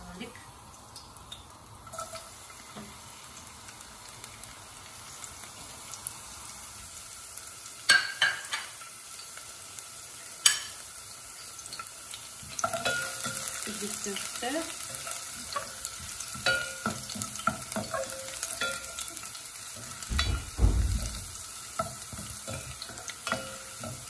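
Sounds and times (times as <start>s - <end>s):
garlic sizzling in hot oil: 0.0s - 24.0s
sharp knocks: 20.1s - 21.4s.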